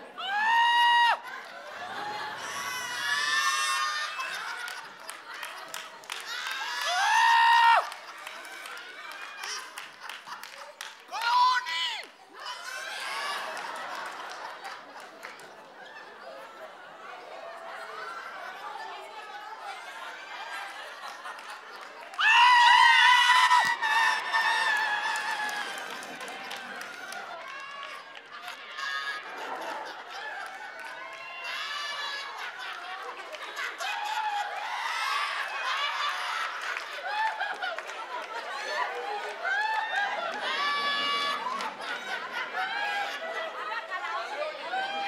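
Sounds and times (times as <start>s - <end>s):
studio audience noise: 0.0s - 45.0s
men shrieking in falsetto: 0.2s - 1.2s, 2.4s - 4.3s, 22.2s - 26.0s.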